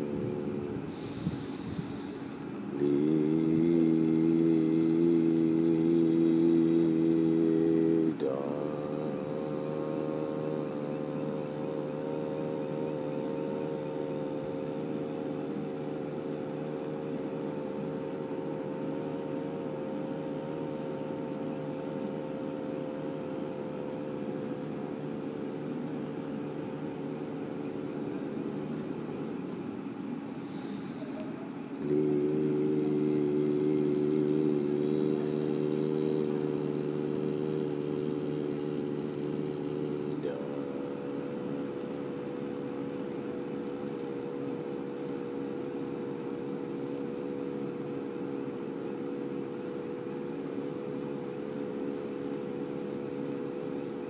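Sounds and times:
low ambient music drone: 0.0 - 54.0.

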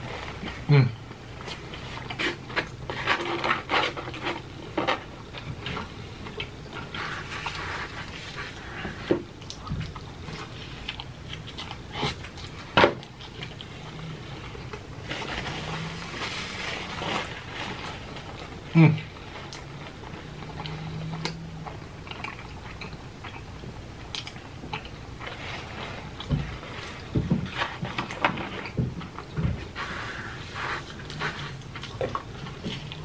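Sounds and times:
man chewing with mouth smacks: 0.0 - 33.0.

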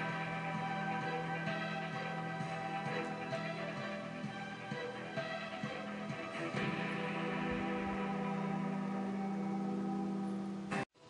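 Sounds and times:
held chord music through tv speaker: 0.0 - 11.0.

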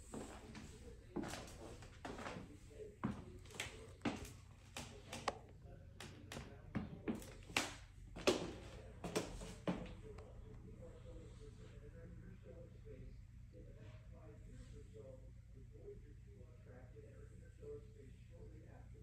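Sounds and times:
footsteps on wooden floor and stairs: 0.1 - 2.4, 3.0 - 5.3, 6.3 - 9.9.

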